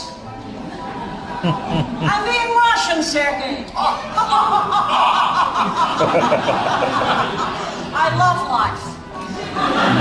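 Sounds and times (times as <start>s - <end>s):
audience laughing: 1.3s - 2.3s, 3.9s - 8.0s, 9.2s - 10.0s.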